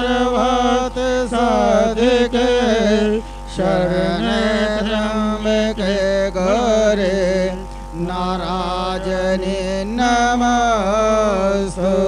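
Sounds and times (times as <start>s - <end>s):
person chanting mantras: 0.0s - 12.0s
steady low hum: 0.0s - 12.0s.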